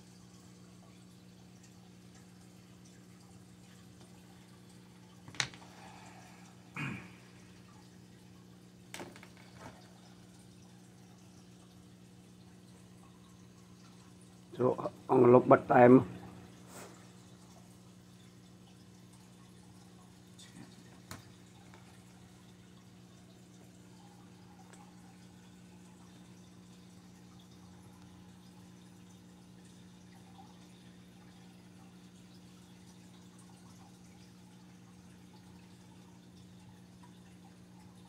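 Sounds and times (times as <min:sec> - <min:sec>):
low electrical hum: 0:00.0 - 0:38.0.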